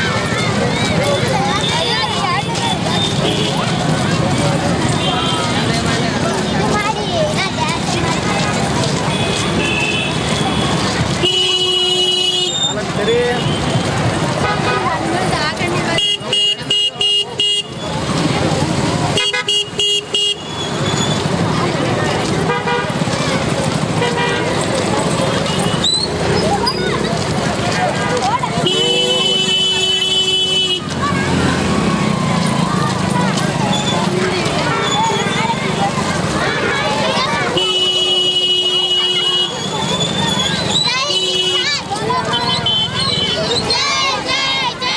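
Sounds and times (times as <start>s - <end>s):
crowd chatter: 0.0s - 44.9s
vehicle horn honking: 9.1s - 14.8s, 16.0s - 17.8s, 19.2s - 20.6s, 22.5s - 23.0s, 28.6s - 30.8s, 37.5s - 39.6s.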